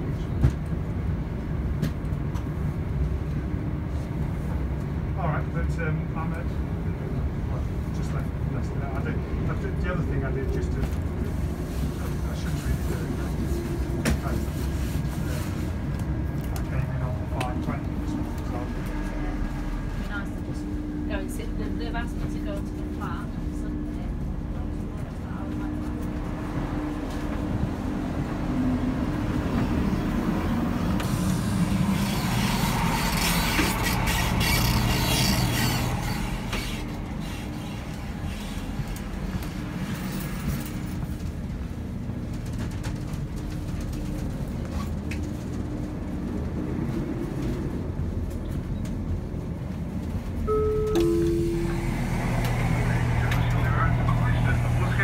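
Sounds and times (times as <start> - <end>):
train diesel engine drone: 0.0 - 55.0
train wheels on rails: 10.5 - 50.4, 51.0 - 55.0
two-note descending chime: 50.5 - 52.8.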